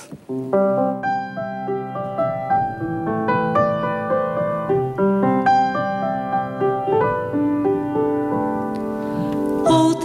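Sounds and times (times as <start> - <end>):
solo grand piano melody: 0.0 - 10.0.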